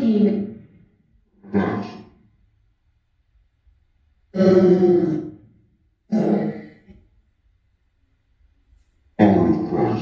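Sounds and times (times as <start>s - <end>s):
rough voice-like bursts: 0.0s - 0.6s, 1.4s - 2.1s, 4.4s - 5.4s, 6.1s - 6.8s, 9.2s - 10.0s.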